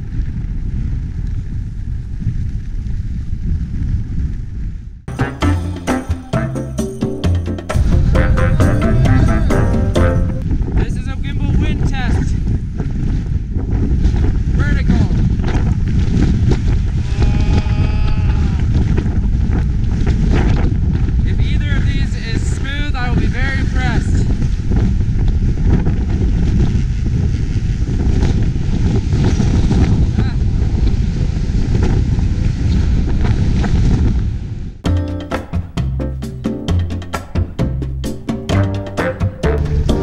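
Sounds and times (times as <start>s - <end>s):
wind buffeting microphone: 0.0s - 5.1s, 7.6s - 34.8s
people calling out: 8.2s - 10.2s, 17.0s - 18.7s.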